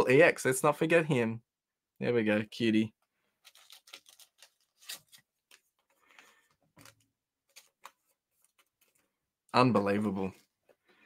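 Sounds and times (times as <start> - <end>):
trading cards clicking and rustling: 3.4 - 9.1.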